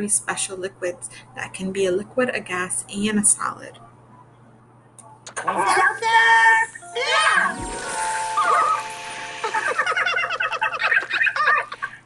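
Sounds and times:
light music: 0:06.7 - 0:10.3
comic falling-pitch sound effect: 0:06.8 - 0:10.4
soda siphon hissing: 0:07.5 - 0:09.9.

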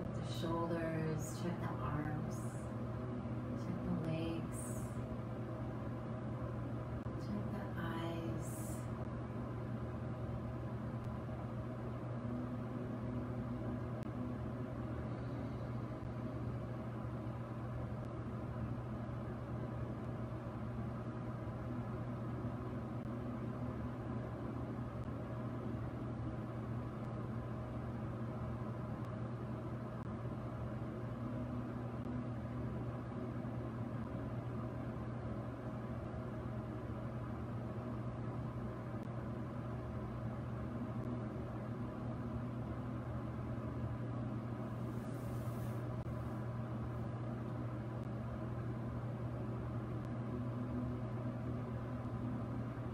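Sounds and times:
steady low hum: 0:00.0 - 0:52.9.

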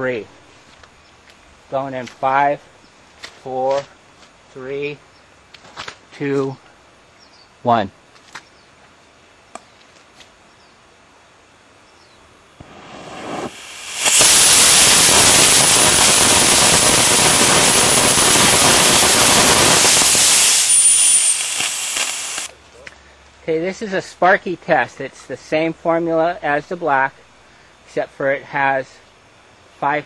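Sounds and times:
rocket motor roaring: 0:12.6 - 0:22.5
thin high whistle: 0:18.6 - 0:22.5.

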